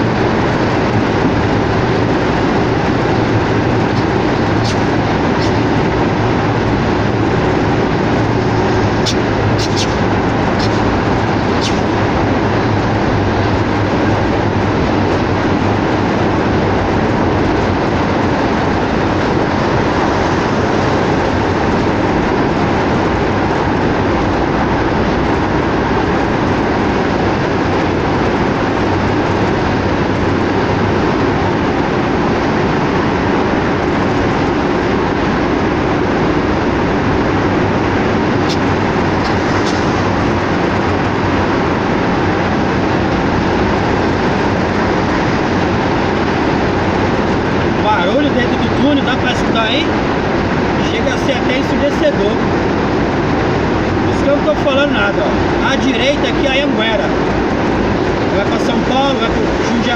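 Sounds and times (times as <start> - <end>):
truck engine and tyre rumble: 0.0 - 59.9.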